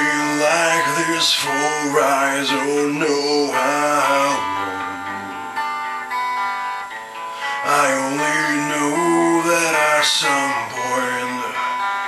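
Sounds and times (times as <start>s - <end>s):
guitar notes ringing: 0.0s - 12.0s.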